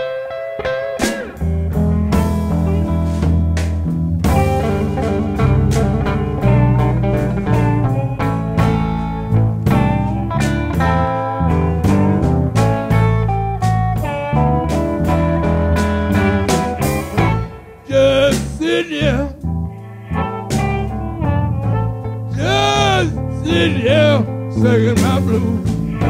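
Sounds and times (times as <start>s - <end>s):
electric guitar: 0.0s - 26.0s
drums: 0.9s - 19.6s, 20.2s - 26.0s
electric bass: 1.3s - 26.0s
harmonica: 22.3s - 26.0s.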